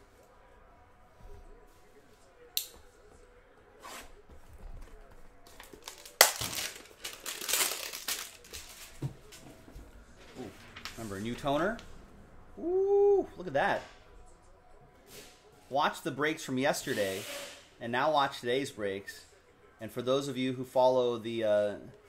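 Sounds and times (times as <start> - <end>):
cellophane crinkling and tearing: 5.6 - 8.9.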